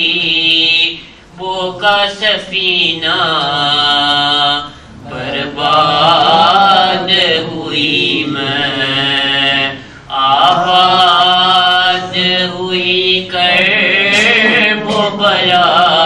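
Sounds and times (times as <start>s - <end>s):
man chanting a lament: 0.0s - 16.0s.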